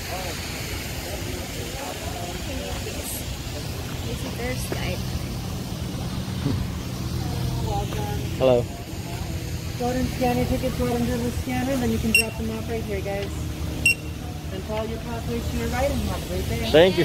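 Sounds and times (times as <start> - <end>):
faint distant voices: 0.0 - 17.0
steady low hum: 0.0 - 17.0.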